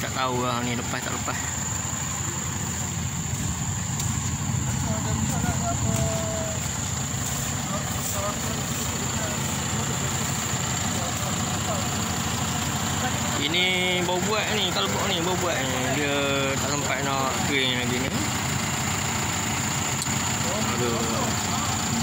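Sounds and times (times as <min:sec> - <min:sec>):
lorry diesel engine at low revs: 0:00.0 - 0:22.0.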